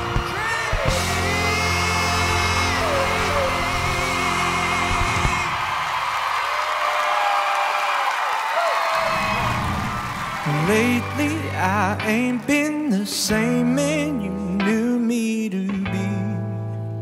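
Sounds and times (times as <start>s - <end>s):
band playing: 0.0s - 6.2s, 10.4s - 14.9s
crowd cheering and whooping: 0.0s - 12.0s
man singing a long note: 0.4s - 5.5s, 10.4s - 16.6s.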